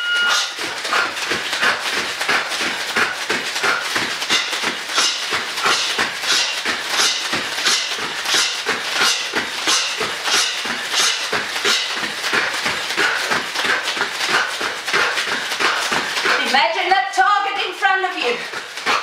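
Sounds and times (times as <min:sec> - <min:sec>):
sharp hissed exhales: 0:07.6 - 0:15.8.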